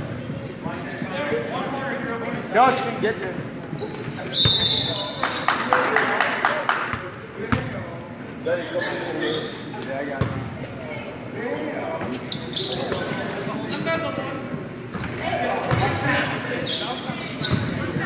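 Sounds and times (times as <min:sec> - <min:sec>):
players and spectators voices: 0:00.0 - 0:18.0.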